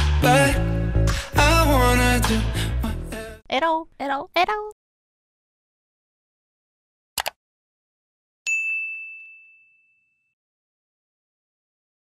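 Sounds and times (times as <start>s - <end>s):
bright ding chime: 8.5s - 10.4s.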